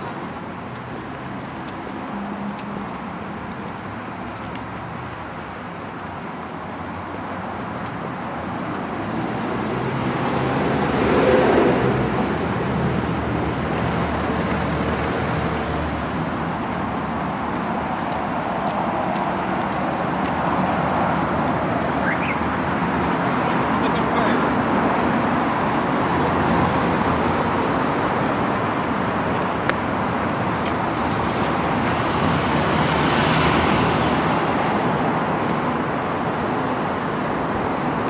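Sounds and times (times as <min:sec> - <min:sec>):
road traffic noise: 0:00.0 - 0:38.0
vehicle passing close: 0:29.9 - 0:35.0.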